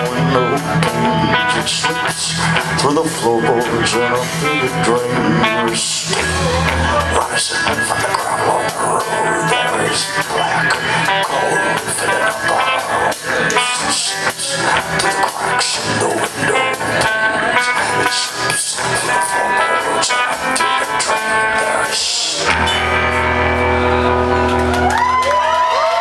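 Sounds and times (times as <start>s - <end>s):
guitar bent notes gliding: 0.0s - 25.6s
keyboard: 0.0s - 25.7s
drums: 0.0s - 26.0s
electric guitars: 0.0s - 26.0s.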